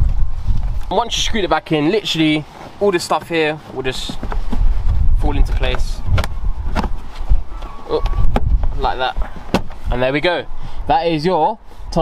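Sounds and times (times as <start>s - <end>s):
handling noise with low rumble: 0.0s - 10.3s.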